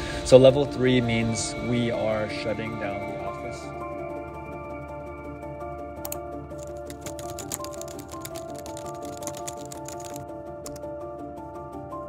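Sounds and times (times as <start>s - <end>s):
soft sustained background music: 0.0s - 12.0s
typing on computer keyboard: 6.1s - 10.9s.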